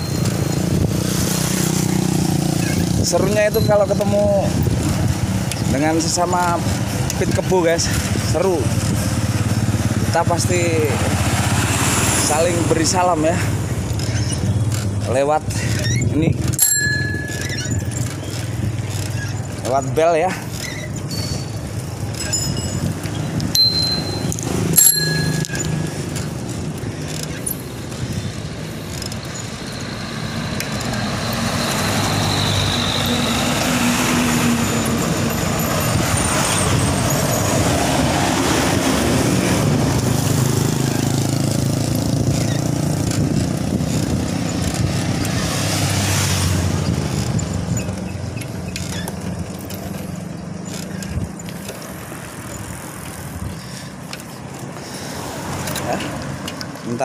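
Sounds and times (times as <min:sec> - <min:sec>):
bicycle bell ringing: 0:00.0 - 0:02.5, 0:03.1 - 0:04.9, 0:16.5 - 0:19.3, 0:20.6 - 0:28.5, 0:29.2 - 0:39.1
motor traffic passing: 0:00.0 - 0:57.0
moving bicycle riding noise: 0:00.0 - 0:57.0.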